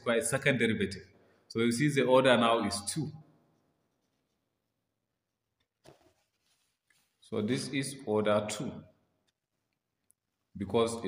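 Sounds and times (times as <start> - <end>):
person speaking: 1.5 - 3.3.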